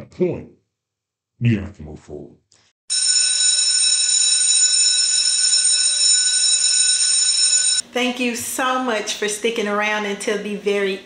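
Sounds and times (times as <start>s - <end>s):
electric school bell ringing: 2.9s - 7.8s.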